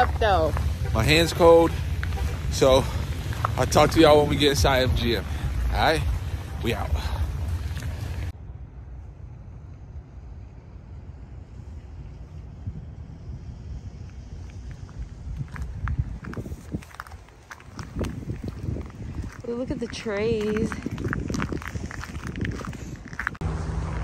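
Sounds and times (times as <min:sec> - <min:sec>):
light wind: 0:00.0 - 0:24.0
wind rumbling on microphone: 0:00.0 - 0:24.0.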